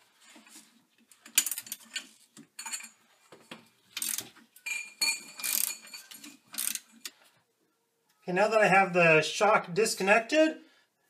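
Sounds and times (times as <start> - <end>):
steel wrenches clinking on bolt: 1.3 - 3.0, 4.0 - 7.1
socket ratchet wrench clicking: 4.0 - 4.2, 5.4 - 5.8, 6.6 - 6.8.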